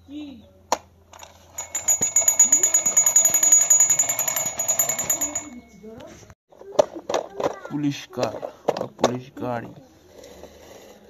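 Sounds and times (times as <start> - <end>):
toy high-pitched ringing rattle: 1.4 - 6.0.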